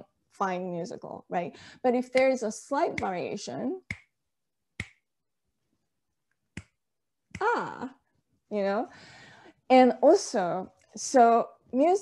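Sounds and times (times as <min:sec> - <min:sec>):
finger snap: 0:02.2 - 0:03.2, 0:03.8 - 0:04.1, 0:04.8 - 0:05.0, 0:06.6 - 0:07.5.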